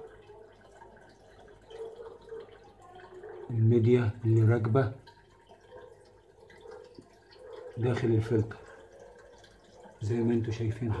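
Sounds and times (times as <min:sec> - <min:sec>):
water dripping faintly: 0:00.0 - 0:11.0.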